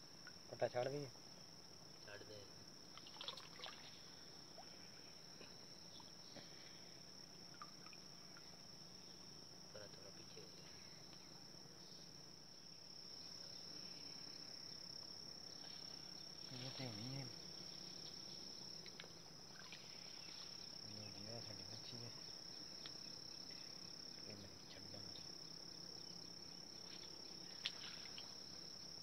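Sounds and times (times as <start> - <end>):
water splashes and trickles: 2.9 - 5.0, 7.3 - 8.6, 19.4 - 20.6, 26.9 - 28.6.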